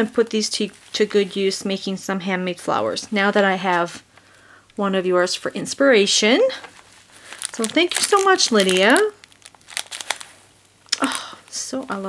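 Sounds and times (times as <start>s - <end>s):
plastic bag crinkling: 6.5s - 12.0s.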